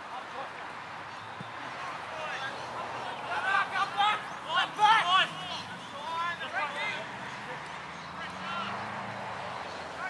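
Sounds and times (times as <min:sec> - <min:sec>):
people shouting and calling out: 0:01.6 - 0:08.8.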